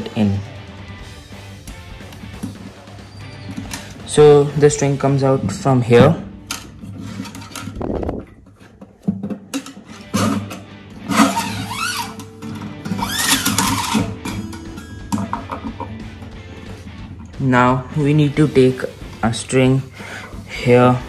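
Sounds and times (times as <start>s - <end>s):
background music with sustained tones: 0.0s - 21.0s
guitar string scraping: 6.0s - 17.4s.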